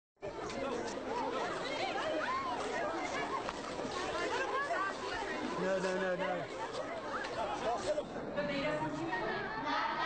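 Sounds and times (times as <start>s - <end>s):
children chattering: 0.2s - 10.0s.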